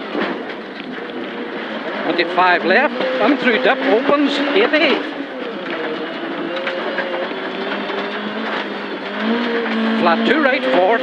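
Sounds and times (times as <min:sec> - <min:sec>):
car engine from inside cabin: 0:00.0 - 0:11.0.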